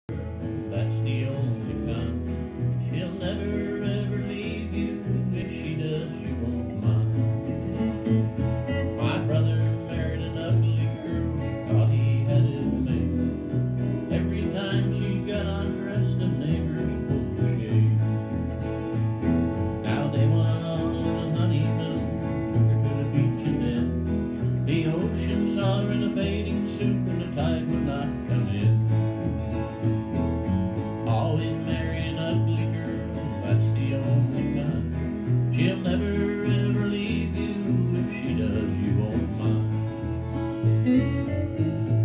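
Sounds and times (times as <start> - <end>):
acoustic guitar: 0.0 - 42.0
bass guitar line: 0.0 - 42.0
electric guitar: 0.0 - 42.0.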